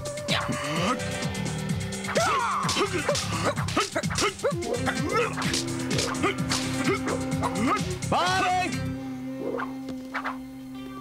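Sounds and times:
action music: 0.0s - 9.1s
wooden staffs clacking: 2.1s - 8.0s.

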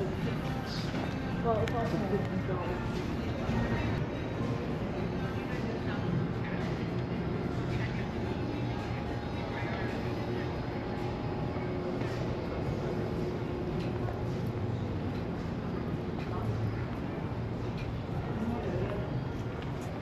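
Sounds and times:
faint indistinct voices: 0.0s - 20.0s
steady low hum: 0.0s - 20.0s.

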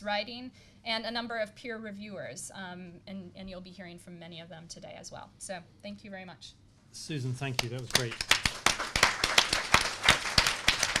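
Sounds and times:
small group applauding: 7.4s - 11.0s.

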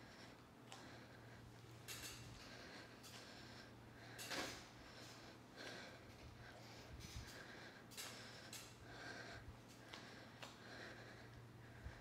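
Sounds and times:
faint breathing: 0.0s - 12.0s.

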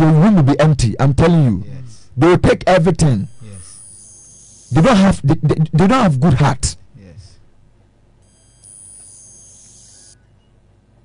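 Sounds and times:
high-pitched whine: 2.9s - 5.3s, 8.2s - 10.2s.

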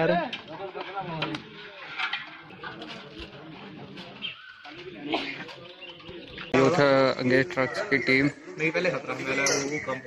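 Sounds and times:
faint people talking: 0.0s - 10.0s
birds calling: 2.4s - 10.0s.

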